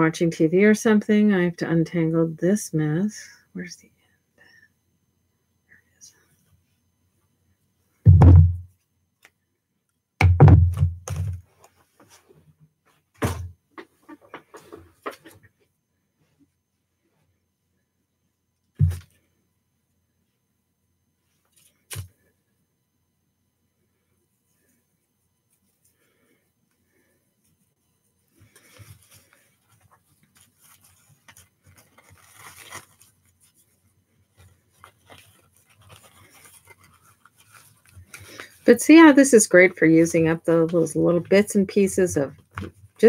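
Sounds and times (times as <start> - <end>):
paper and card rustling: 28.4 - 43.0.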